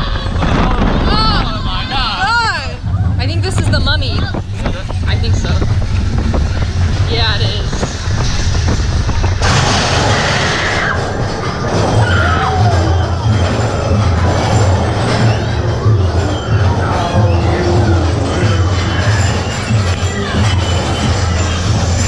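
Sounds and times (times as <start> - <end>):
roller coaster rumbling on track: 0.0 - 22.0
ride soundtrack music: 11.0 - 22.0.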